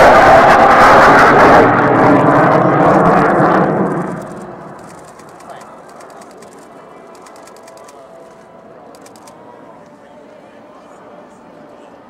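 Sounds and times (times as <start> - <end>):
jet engines roaring: 0.0 - 10.0.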